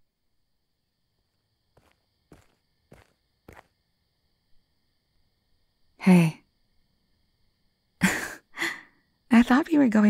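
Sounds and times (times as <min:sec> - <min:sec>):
faint footsteps: 0:01.7 - 0:03.8.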